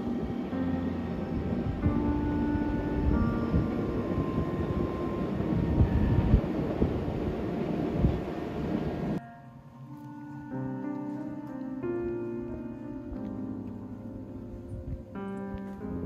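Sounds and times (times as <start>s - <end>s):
distant train rumble: 0.0s - 9.2s
faint background music: 0.0s - 16.0s.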